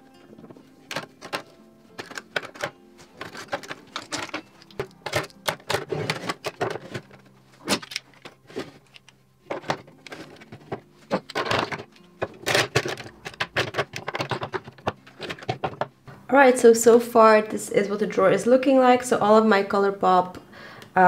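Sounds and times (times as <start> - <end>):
plastic tubes clacking on acrylic: 0.9 - 15.9.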